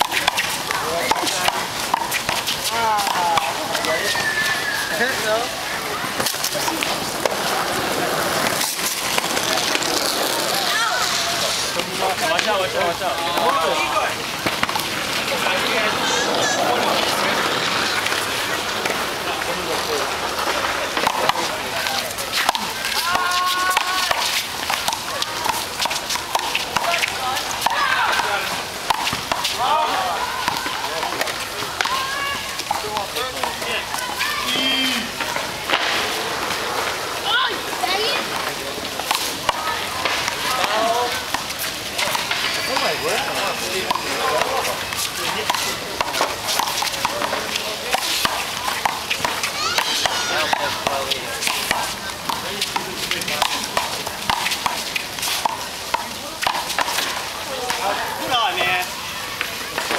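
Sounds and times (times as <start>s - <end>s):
players calling out: 0.0s - 59.9s.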